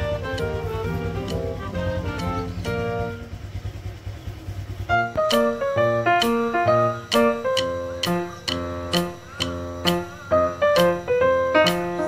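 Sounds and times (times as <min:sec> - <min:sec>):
background music note: 0:00.0 - 0:03.3, 0:04.9 - 0:12.0
low uneven rumble: 0:00.0 - 0:12.0.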